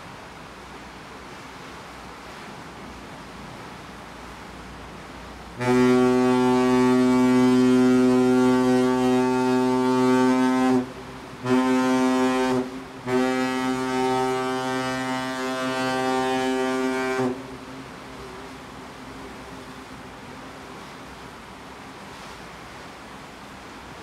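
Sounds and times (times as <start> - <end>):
deep ship horn blasts: 5.5 - 20.0.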